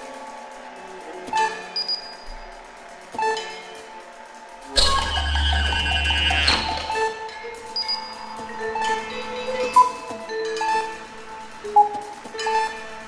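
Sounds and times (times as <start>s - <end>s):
chamber ensemble with electronics: 1.2s - 13.0s.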